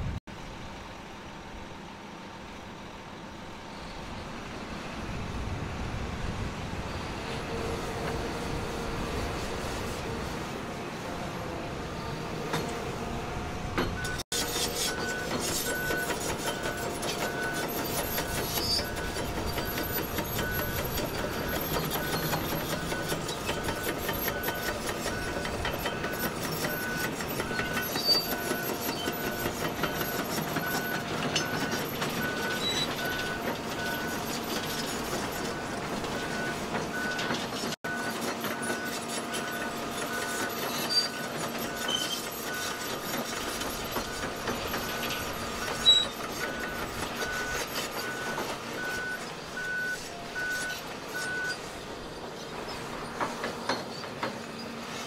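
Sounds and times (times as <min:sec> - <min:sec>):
diesel machinery running: 0:00.0 - 0:55.0
back-up alarm beeping: 0:14.8 - 0:43.1, 0:43.9 - 0:51.6.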